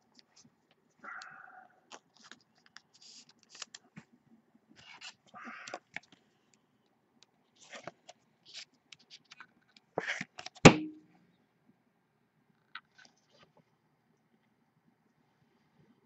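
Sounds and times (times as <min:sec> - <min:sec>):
trading cards clicking and rustling: 0:01.9 - 0:03.9.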